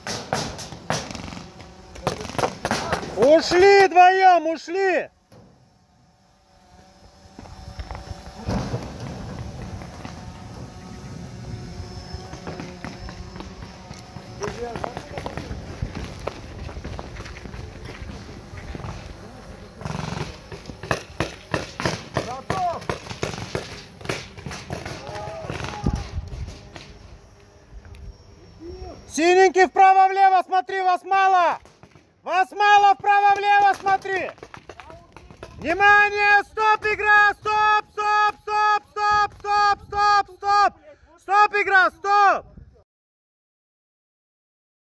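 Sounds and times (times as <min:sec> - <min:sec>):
paintball markers firing: 0:00.0 - 0:04.0, 0:12.2 - 0:27.0, 0:31.6 - 0:32.2, 0:33.0 - 0:35.8
distant shouting voices: 0:01.6 - 0:05.3, 0:17.5 - 0:23.0, 0:23.8 - 0:26.7, 0:28.3 - 0:31.6, 0:32.2 - 0:42.4
wind rumble on microphone: 0:14.6 - 0:19.2.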